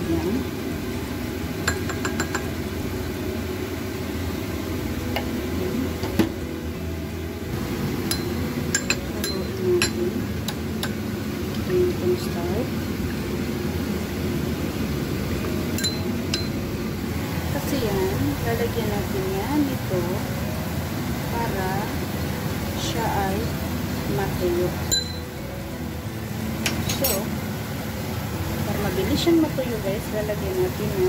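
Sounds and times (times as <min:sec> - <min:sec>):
steady low hum: 0:00.0 - 0:31.0
metal spoon clinking ceramic bowl: 0:08.1 - 0:10.0, 0:15.8 - 0:16.6, 0:24.9 - 0:25.2.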